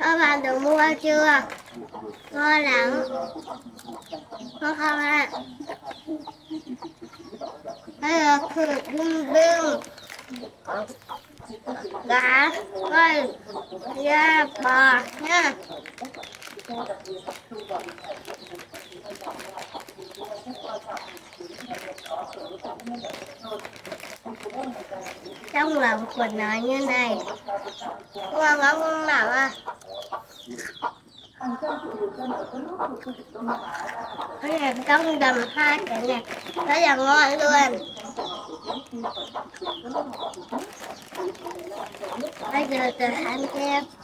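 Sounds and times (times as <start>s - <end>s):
chickens clucking: 0.0s - 44.0s.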